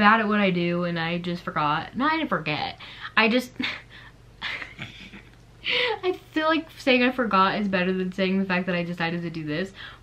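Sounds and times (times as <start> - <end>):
woman laughing breathily: 3.6 - 6.0.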